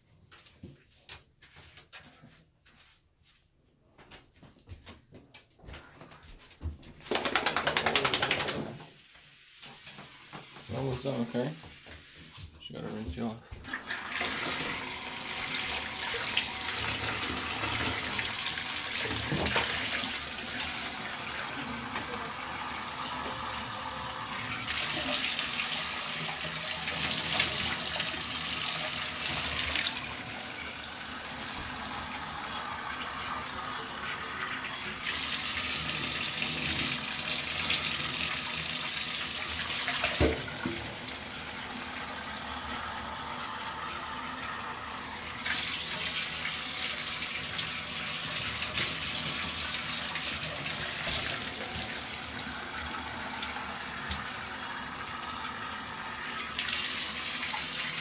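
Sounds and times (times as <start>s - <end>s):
water running into bathtub: 7.0s - 58.0s.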